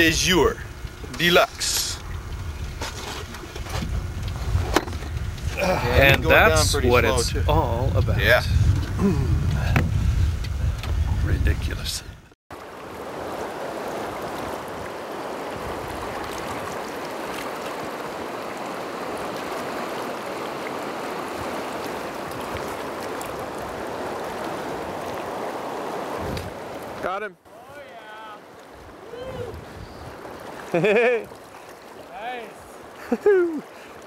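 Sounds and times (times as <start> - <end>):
man calling out: 5.5 - 8.0, 27.5 - 28.4, 29.0 - 29.6, 32.1 - 32.7.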